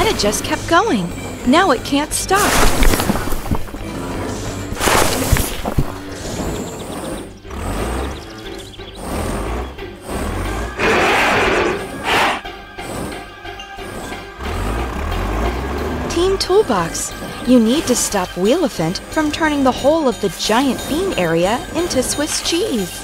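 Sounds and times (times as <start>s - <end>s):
background music: 0.0s - 23.0s
low engine rumbles: 0.0s - 23.0s
cartoon digging effects: 1.6s - 3.8s, 4.7s - 14.8s
burst of scattering dirt: 2.2s - 6.8s.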